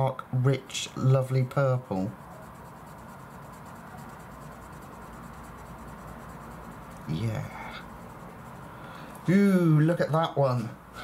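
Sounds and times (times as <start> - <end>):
pencil scratching on paper: 2.0 - 9.0.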